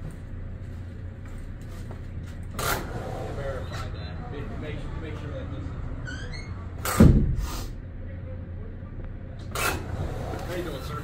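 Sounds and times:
loud thump: 6.8 - 7.5.

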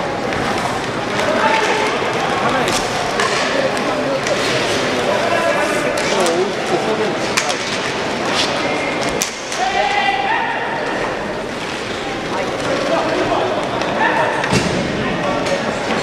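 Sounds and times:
hubbub of crowd and player voices: 0.0 - 16.0
sticks striking puck: 0.3 - 4.8.

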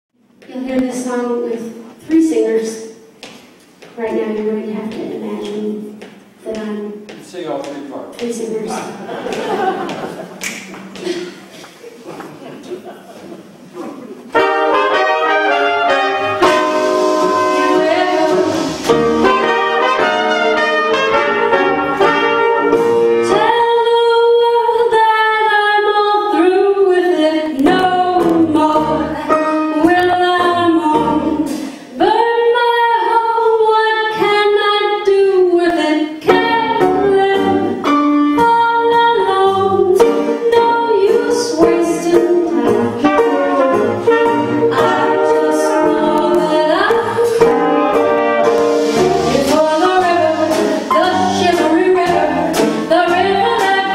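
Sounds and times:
traditional jazz band playing: 14.2 - 25.3, 26.4 - 31.8, 36.2 - 53.9
horns sliding between notes: 14.3 - 23.7, 40.0 - 53.9.

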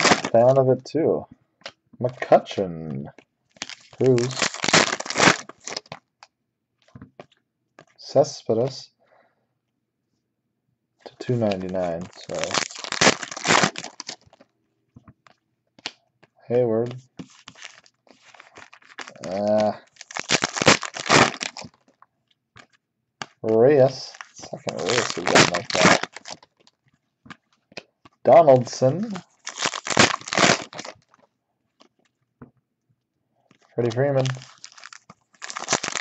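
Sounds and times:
plastic wrapper crinkling and tearing: 0.0 - 0.5, 3.5 - 6.3, 11.4 - 14.5, 17.2 - 32.2, 33.5 - 36.0
cards being handled: 11.3 - 22.0, 22.6 - 26.6.

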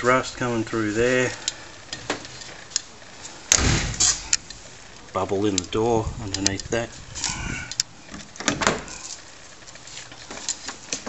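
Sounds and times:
sharp clicks: 3.5 - 9.0.

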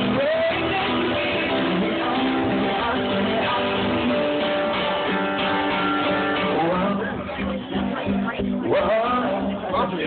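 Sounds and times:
amplified acoustic guitar chords: 0.0 - 10.0.

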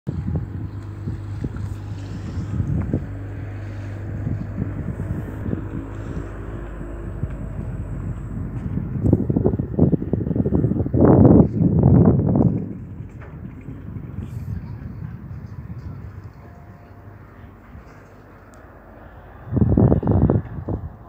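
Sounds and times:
ship diesel engine humming: 0.1 - 21.0
wind buffeting microphone: 0.1 - 21.0.

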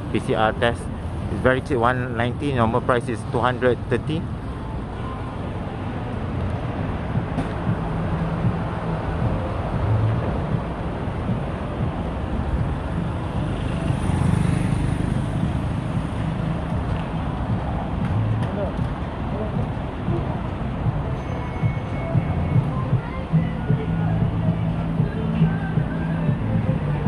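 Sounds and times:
road traffic rumble: 0.0 - 27.0
vehicle passing: 5.8 - 27.0.

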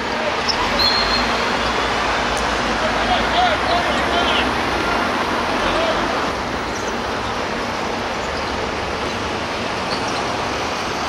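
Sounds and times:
rushing outdoor noise: 0.0 - 11.0
distant players calling out: 2.7 - 6.3.

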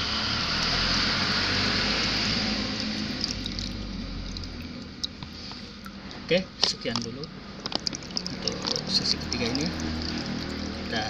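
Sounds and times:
water running into pond: 0.0 - 11.0.

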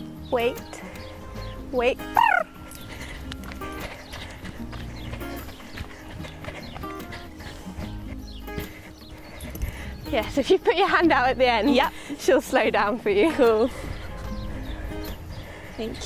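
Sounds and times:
background music: 0.0 - 16.0
running footsteps: 0.8 - 16.0
horse hoofbeats on sand: 2.7 - 16.0.

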